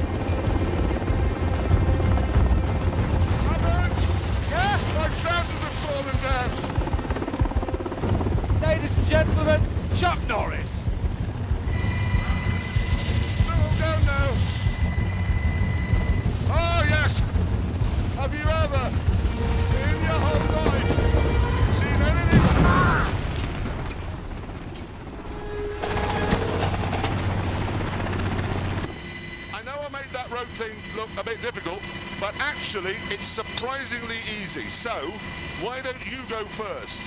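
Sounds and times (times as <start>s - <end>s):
helicopter rotor throb: 0.0s - 22.3s, 23.8s - 37.0s
turbine whine: 0.0s - 22.3s, 23.6s - 37.0s
rumble: 6.6s - 29.0s.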